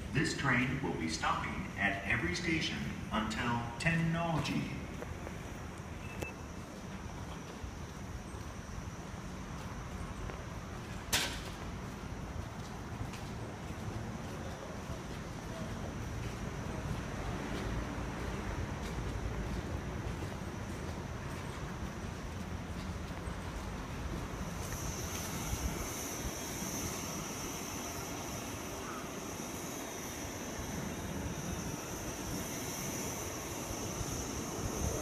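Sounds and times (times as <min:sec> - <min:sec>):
faint high steady tone: 0:05.9 - 0:06.6, 0:24.4 - 0:35.0.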